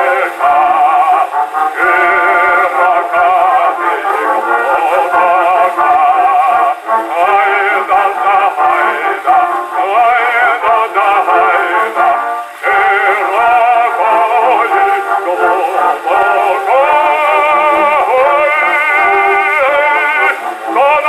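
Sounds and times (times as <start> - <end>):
male bass singing on gramophone: 0.0 - 21.0.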